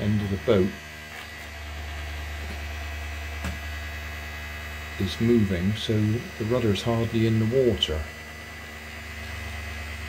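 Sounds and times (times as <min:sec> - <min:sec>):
toy electric motor humming: 0:00.0 - 0:10.0.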